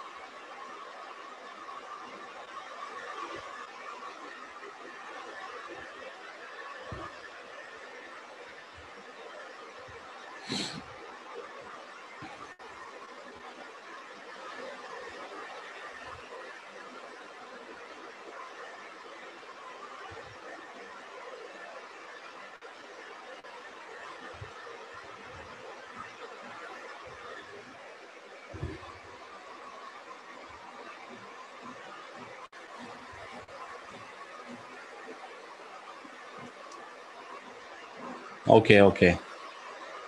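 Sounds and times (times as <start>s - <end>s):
microphone hiss: 10.4s - 10.8s, 37.8s - 39.2s.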